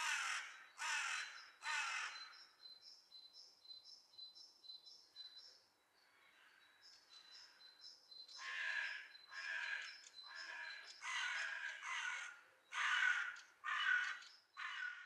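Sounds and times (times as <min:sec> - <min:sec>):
crow cawing: 0:00.0 - 0:02.3, 0:08.4 - 0:15.0
small birds chirping: 0:00.0 - 0:15.0.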